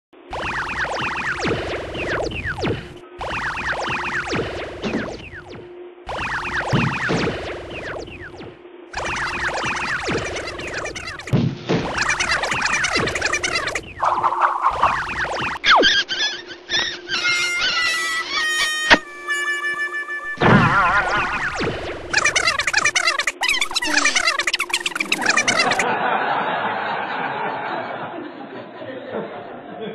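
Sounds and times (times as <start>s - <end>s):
falling whistle-like swoops: 0.3s - 11.3s, 11.9s - 16.1s, 16.7s - 25.8s
electronic beeps: 0.3s - 16.1s, 20.2s - 25.9s
cartoon music: 0.3s - 25.9s.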